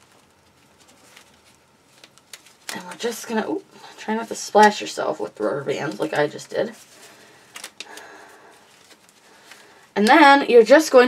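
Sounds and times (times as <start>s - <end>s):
faint rustling: 0.0s - 4.7s, 5.4s - 9.9s
rubber bands snapping: 7.5s - 8.1s.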